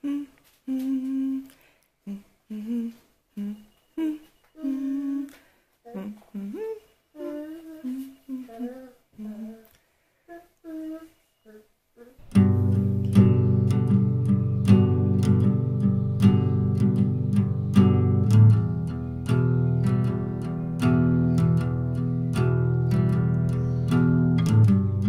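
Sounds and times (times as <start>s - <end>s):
person humming: 0.0s - 22.3s.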